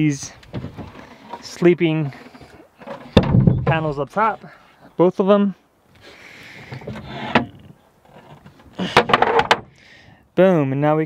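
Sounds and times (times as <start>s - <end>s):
rattling slide with clunks: 0.4s - 3.9s, 6.5s - 9.8s
panels scraping as they slide: 0.5s - 3.6s, 6.6s - 9.5s.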